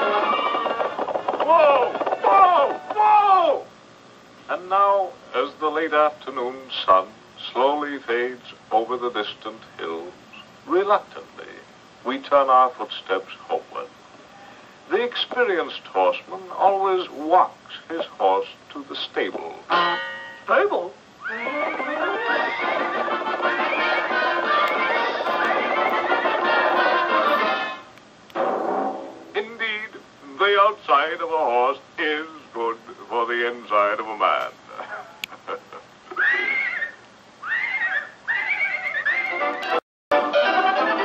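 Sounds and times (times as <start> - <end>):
cartoon horse neighing laughter: 21.2 - 23.3, 36.1 - 39.6
cartoon closing music: 21.2 - 27.8.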